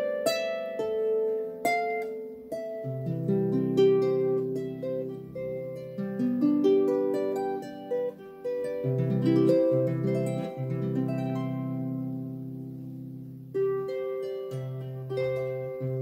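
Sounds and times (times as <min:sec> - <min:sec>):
harp melody of plucked notes: 0:00.0 - 0:16.0.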